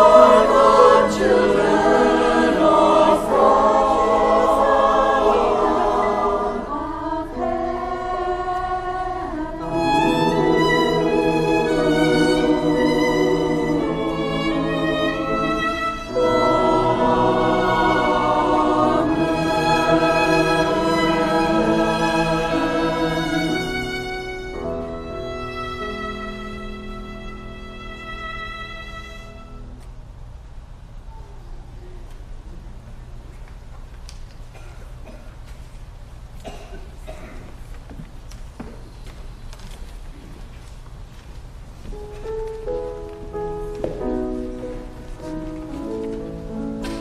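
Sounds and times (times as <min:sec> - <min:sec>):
children's choir singing: 0:00.0 - 0:25.4
footsteps: 0:37.4 - 0:47.0.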